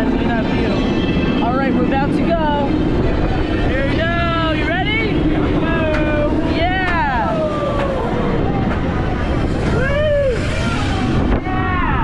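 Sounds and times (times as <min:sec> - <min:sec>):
coaster train rumble: 0:00.0 - 0:12.0
rush of wind: 0:00.0 - 0:12.0
riders yelling and screaming: 0:05.6 - 0:08.8, 0:09.5 - 0:12.0.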